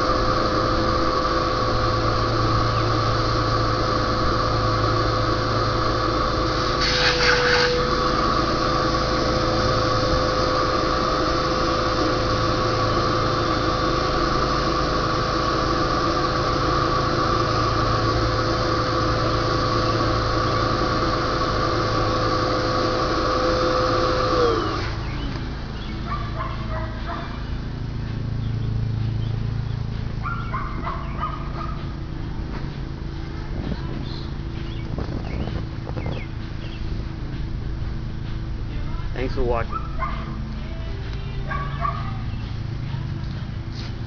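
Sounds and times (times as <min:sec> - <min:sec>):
electric air pump whining: 0:00.0 - 0:44.0.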